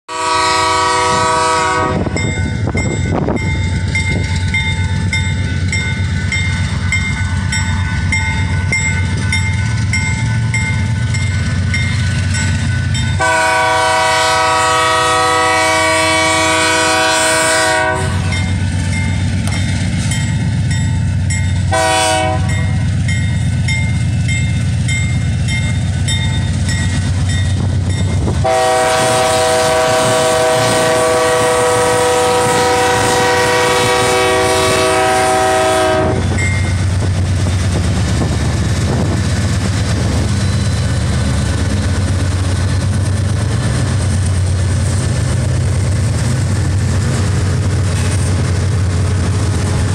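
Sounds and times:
train air horn blasts: 0.1s - 2.2s, 13.2s - 18.5s, 21.7s - 22.8s, 28.3s - 36.4s
diesel locomotive engine rumble: 0.1s - 49.9s.

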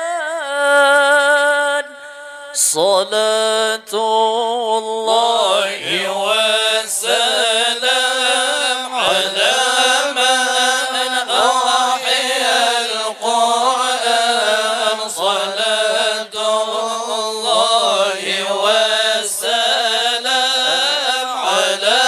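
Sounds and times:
person chanting: 0.0s - 22.0s.

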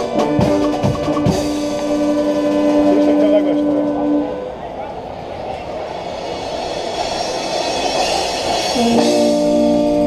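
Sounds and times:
drum roll: 0.0s - 4.2s, 5.9s - 10.0s
brass phrases: 0.0s - 4.7s, 8.8s - 10.0s.

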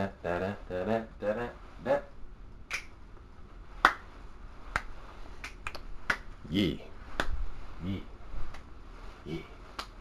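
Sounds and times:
man singing: 0.0s - 2.1s.

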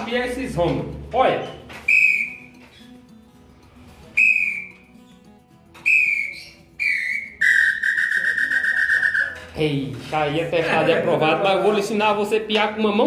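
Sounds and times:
bird call whistle notes: 1.9s - 2.6s, 4.2s - 4.9s, 5.8s - 9.5s.

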